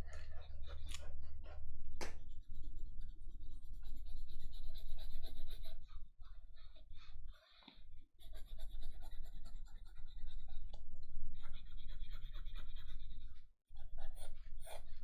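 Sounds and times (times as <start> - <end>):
pencil scratching on paper: 2.2 - 15.0.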